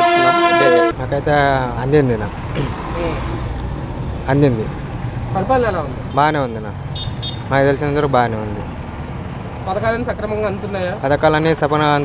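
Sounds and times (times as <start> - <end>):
man talking: 0.0 - 2.4, 4.2 - 4.8, 5.4 - 6.8, 7.5 - 8.7
street traffic rumble: 0.0 - 12.0.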